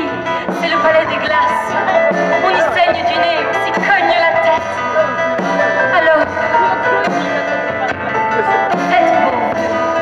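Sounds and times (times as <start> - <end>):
drum kit playing: 0.0 - 10.0.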